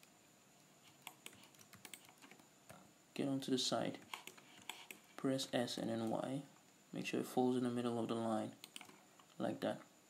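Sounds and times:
keyboard and mouse clicks: 0.9 - 2.8, 4.0 - 5.0, 8.6 - 9.4.

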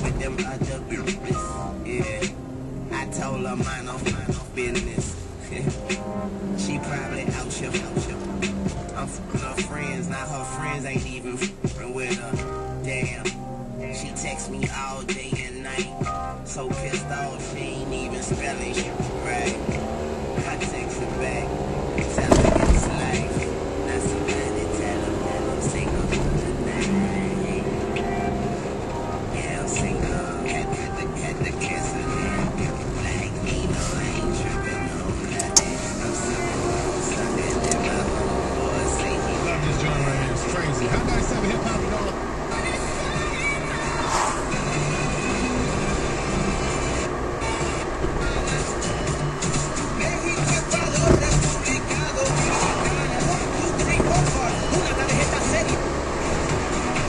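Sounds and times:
music with singing on car radio: 0.0 - 57.0
road and engine noise: 0.0 - 57.0.

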